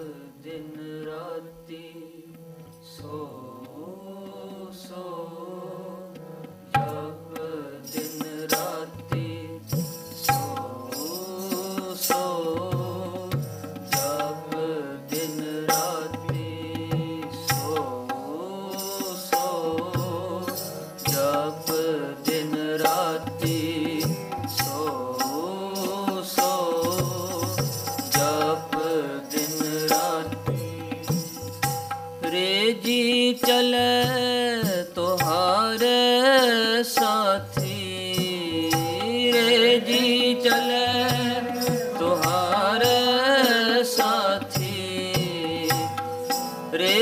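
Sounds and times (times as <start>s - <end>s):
harmonium chords: 0.0s - 47.0s
person singing: 0.0s - 47.0s
tabla strokes: 6.2s - 32.6s, 33.4s - 47.0s.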